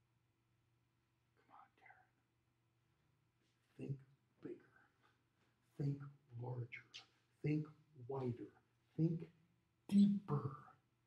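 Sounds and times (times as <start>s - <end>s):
faint whispered voice: 1.4s - 2.2s, 3.7s - 5.1s, 9.9s - 10.8s.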